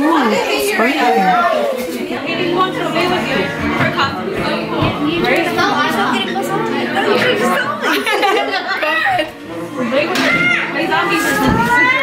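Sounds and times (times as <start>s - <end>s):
party chatter: 0.0s - 12.0s.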